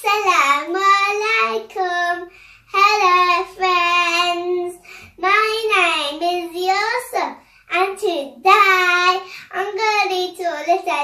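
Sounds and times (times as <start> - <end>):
short breaths: 2.2 - 2.8, 4.7 - 5.2, 7.4 - 7.7, 9.2 - 9.5.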